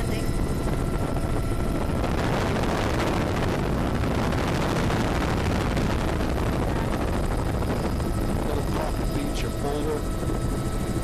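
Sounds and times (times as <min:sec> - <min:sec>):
helicopter engine and rotor: 0:00.0 - 0:11.0.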